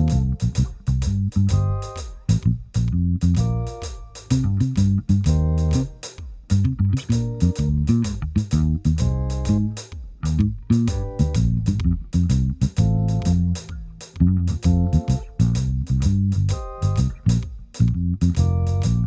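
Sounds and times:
drums steady beat: 0.0 - 19.0
electric bass line: 0.0 - 19.0.

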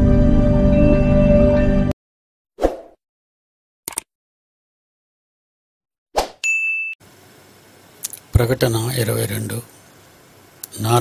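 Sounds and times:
bell notification ding: 6.4 - 7.0.

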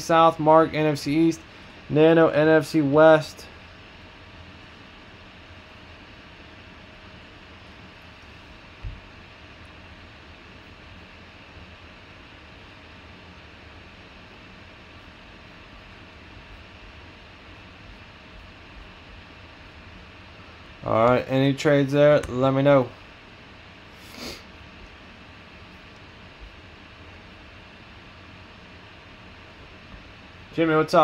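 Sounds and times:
room noise hiss: 0.0 - 31.0.

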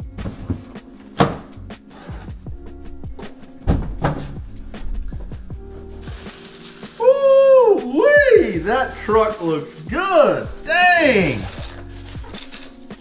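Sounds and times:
background music: 0.0 - 13.0
heavy thump: 3.6 - 4.4.

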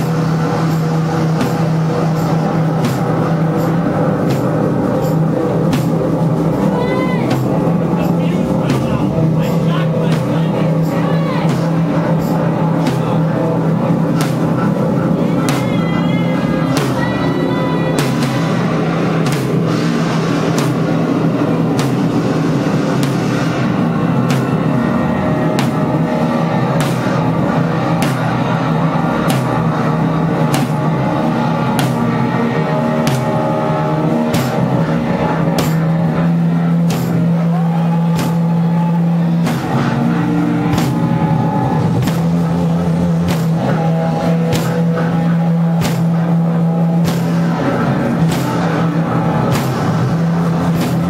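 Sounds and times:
dense synth drone: 0.0 - 51.0
sharp drum or cymbal hits: 0.0 - 51.0.

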